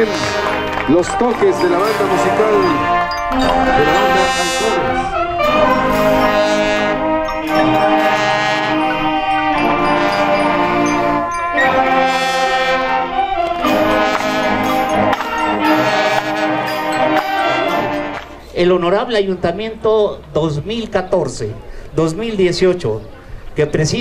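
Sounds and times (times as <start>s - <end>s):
marching band brass chords: 0.0s - 18.5s.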